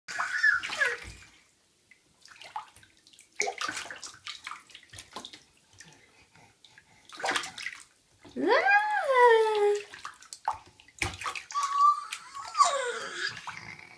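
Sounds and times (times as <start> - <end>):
baby squealing: 0.1 - 1.1, 11.5 - 13.5
bathwater splashing: 0.1 - 13.9.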